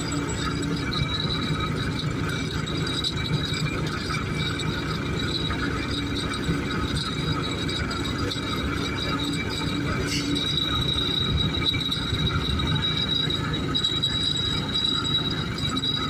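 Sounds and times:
tractor engine: 0.0 - 16.0.

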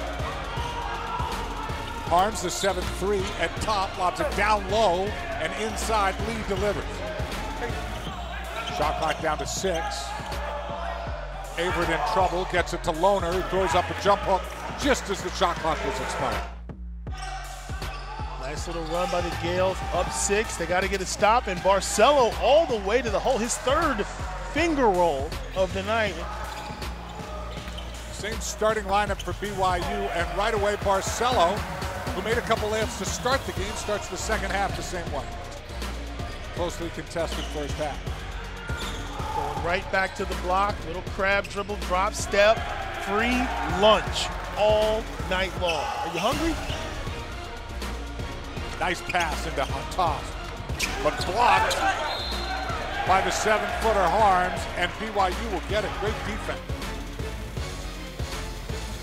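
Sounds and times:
background music: 0.0 - 59.0.

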